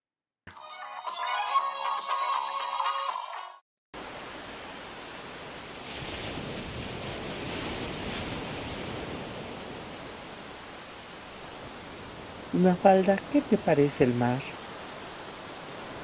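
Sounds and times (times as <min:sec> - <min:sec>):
waves washing onto a beach: 0:04.0 - 0:16.0.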